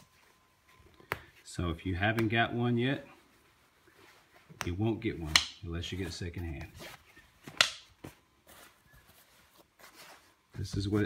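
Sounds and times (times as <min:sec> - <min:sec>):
jacket fabric rustling: 0:00.0 - 0:11.0.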